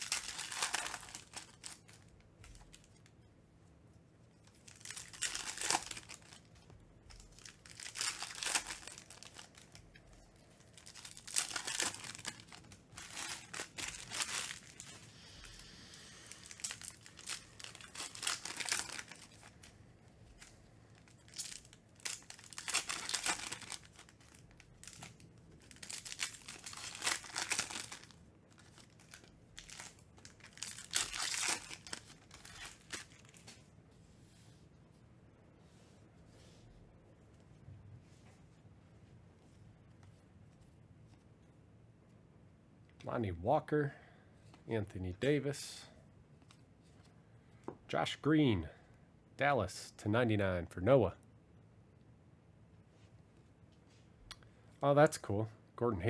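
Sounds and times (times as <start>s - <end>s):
foil wrapper tearing and crinkling: 0.0s - 3.0s, 4.5s - 6.4s, 7.1s - 9.8s, 10.6s - 15.0s, 16.3s - 19.7s, 20.3s - 33.5s.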